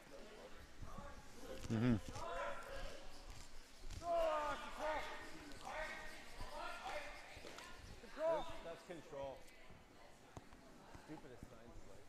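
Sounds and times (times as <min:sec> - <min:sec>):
people shouting calls: 0:04.0 - 0:06.9.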